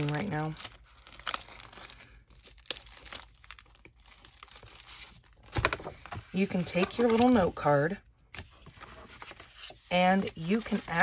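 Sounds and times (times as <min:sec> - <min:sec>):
plastic wrapping crinkling: 0:00.0 - 0:07.6.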